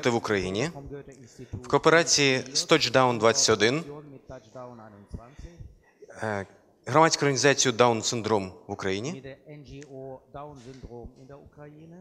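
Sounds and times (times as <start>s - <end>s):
surrounding talk: 0.0s - 12.0s
person talking softly: 3.7s - 6.4s.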